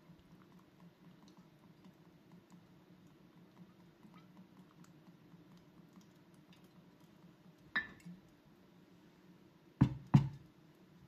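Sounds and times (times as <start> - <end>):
light glass clink: 7.7 - 8.0
glass bottle knocking on wood: 9.8 - 10.4.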